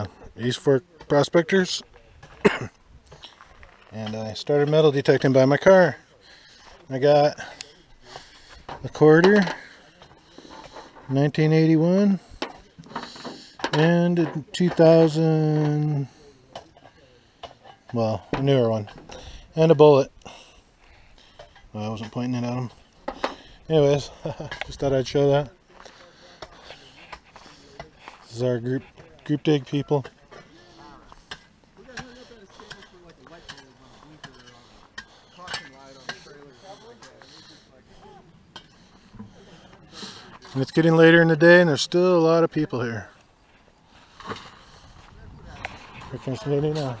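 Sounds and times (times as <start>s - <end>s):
man talking: 0.0s - 2.6s, 3.9s - 6.1s, 6.8s - 7.8s, 8.7s - 10.0s, 11.1s - 12.3s, 13.7s - 16.6s, 17.9s - 18.9s, 21.7s - 22.8s, 23.6s - 31.1s, 39.4s - 43.2s, 45.1s - 47.0s
faint distant voices talking: 25.4s - 40.9s.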